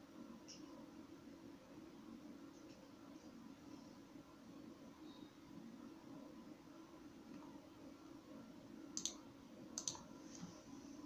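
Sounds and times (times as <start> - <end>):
low steady background hum: 0.0 - 11.0
faint computer mouse clicks: 9.0 - 9.2, 9.8 - 10.0.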